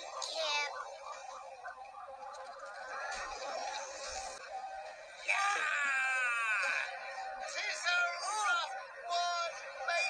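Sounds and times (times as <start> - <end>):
slowed warbling alarm: 0.0 - 10.0.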